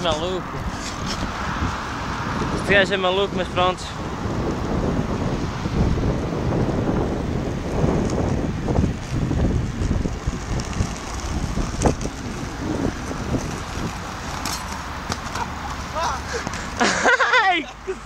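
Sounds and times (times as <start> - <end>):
wind rushing over microphone: 0.0 - 17.1
skate wheels rolling on asphalt: 0.0 - 18.0.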